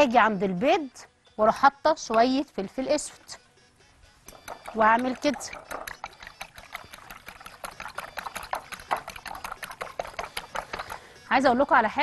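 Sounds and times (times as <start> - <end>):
fork clicking against glass bowl: 4.3 - 11.0
egg sloshing: 4.3 - 11.2.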